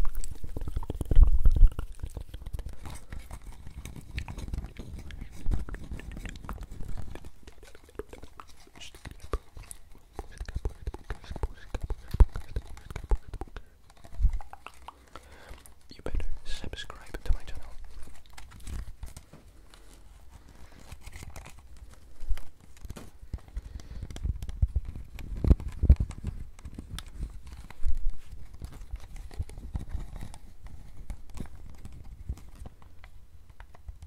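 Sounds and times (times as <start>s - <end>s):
whispered mouth sounds: 0.0s - 18.3s.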